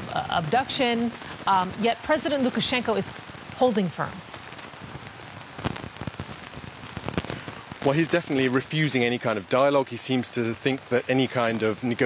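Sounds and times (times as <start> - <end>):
rain pattering on umbrella: 0.1 - 12.0.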